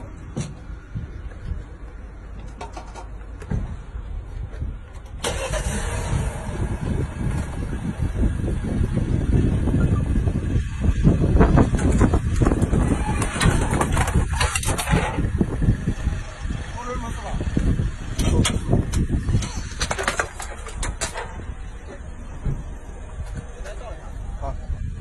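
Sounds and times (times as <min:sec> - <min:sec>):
car engine starting and running: 0:00.0 - 0:25.0.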